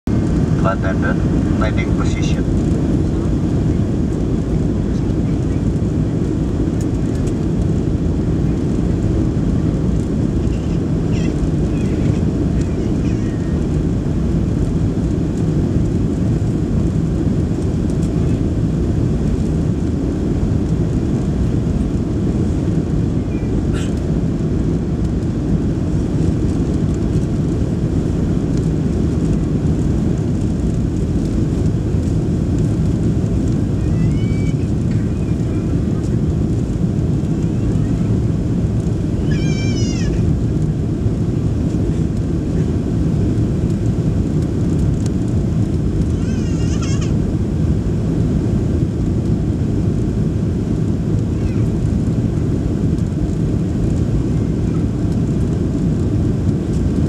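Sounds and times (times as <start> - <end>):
airflow over airframe: 0.0 - 57.0
jet engine low rumble: 0.0 - 57.0.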